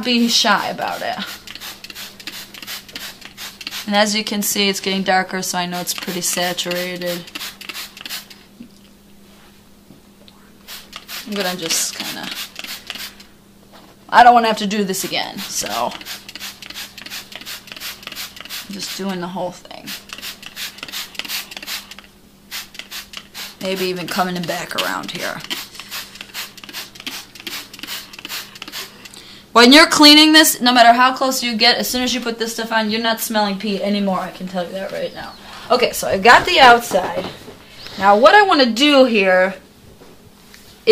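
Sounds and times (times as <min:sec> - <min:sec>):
spray bottle squirting: 0:00.8 - 0:03.9, 0:06.0 - 0:08.4, 0:10.7 - 0:13.2, 0:15.4 - 0:19.0, 0:19.9 - 0:29.2.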